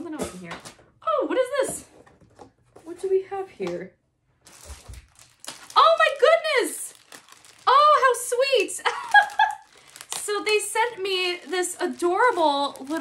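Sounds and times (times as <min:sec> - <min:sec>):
woman speaking excitedly: 0:00.0 - 0:01.9, 0:05.7 - 0:07.0, 0:07.6 - 0:09.1, 0:10.2 - 0:13.0
plastic packaging crinkling: 0:04.4 - 0:13.0.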